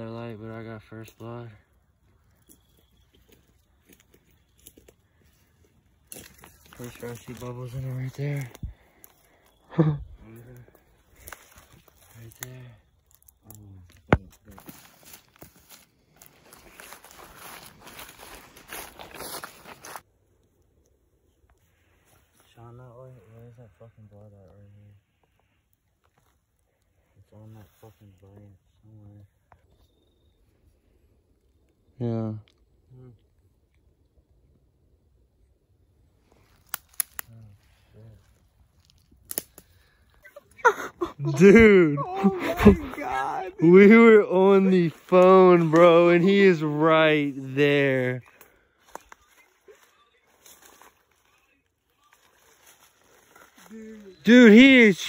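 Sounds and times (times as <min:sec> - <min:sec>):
footsteps crunching through dry leaves: 0:02.5 - 0:08.6, 0:11.0 - 0:12.5, 0:14.2 - 0:20.0, 0:48.3 - 0:54.3
person speaking: 0:40.2 - 0:48.2, 0:53.7 - 0:55.0.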